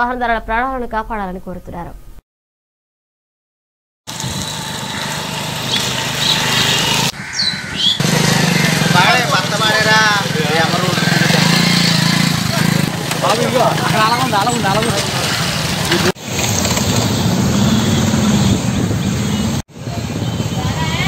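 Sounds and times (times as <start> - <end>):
motorcycle engine running: 4.1 - 21.0
motorcycles humming on street: 4.1 - 21.0
people's voices: 8.1 - 16.2, 19.9 - 21.0.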